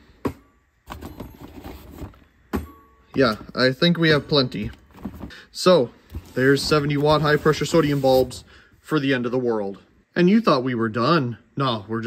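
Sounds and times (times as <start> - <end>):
paperboard boxes rustling and tapping: 0.9 - 3.5, 4.6 - 5.4
sharp box knock: 2.5 - 2.8.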